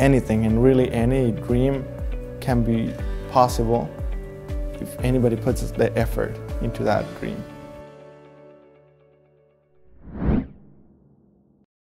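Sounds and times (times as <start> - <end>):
background music: 0.0 - 9.6
whoosh sound effect: 9.8 - 11.3.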